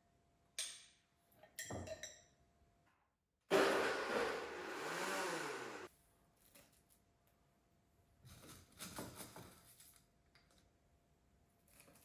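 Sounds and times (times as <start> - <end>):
blender running: 3.5 - 5.9.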